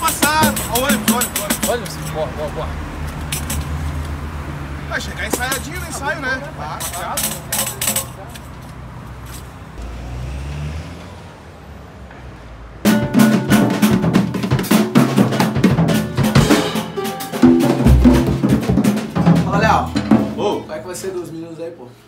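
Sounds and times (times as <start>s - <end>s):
strummed guitar with drums music: 0.0s - 1.8s, 12.9s - 20.5s
car going by: 0.0s - 13.0s.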